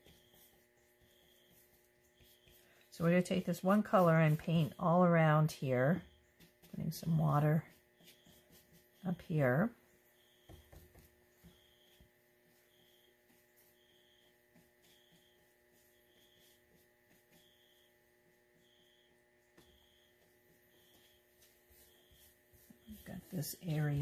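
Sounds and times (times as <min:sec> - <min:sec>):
steady electrical hum: 0:00.0 - 0:24.0.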